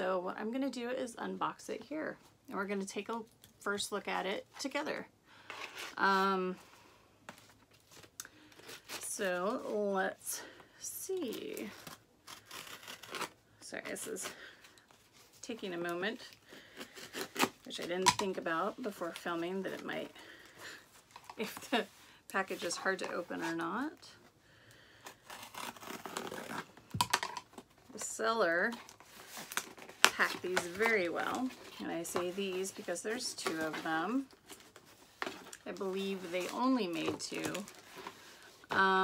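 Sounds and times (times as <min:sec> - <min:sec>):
scissors cutting packaging: 0:11.3 - 0:13.4, 0:16.7 - 0:18.4, 0:25.0 - 0:26.7
package ripping and tearing: 0:11.8 - 0:13.4, 0:25.0 - 0:27.6.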